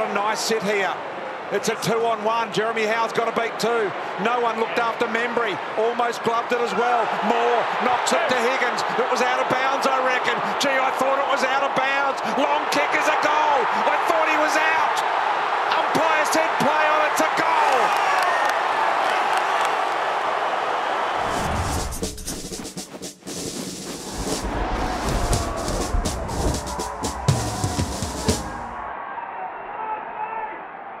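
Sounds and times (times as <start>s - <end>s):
stadium crowd roaring: 0.0s - 22.0s, 24.2s - 31.0s
music with heavy bass and drums: 21.4s - 28.8s.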